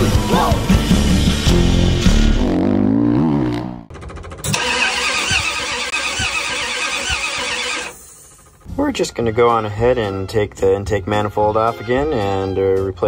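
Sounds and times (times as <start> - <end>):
intro music: 0.0 - 3.0
loud engine running: 3.9 - 8.7.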